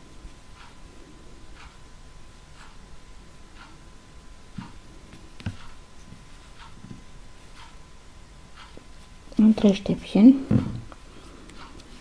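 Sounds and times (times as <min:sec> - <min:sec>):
faint regular ticking: 0:00.4 - 0:10.0, 0:10.9 - 0:11.9.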